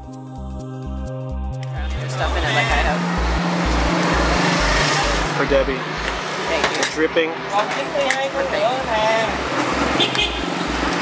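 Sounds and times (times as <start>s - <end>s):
low repeating pulse: 0.0s - 6.5s
street traffic hum: 1.6s - 11.0s
motorbikes and cars passing: 1.7s - 11.0s.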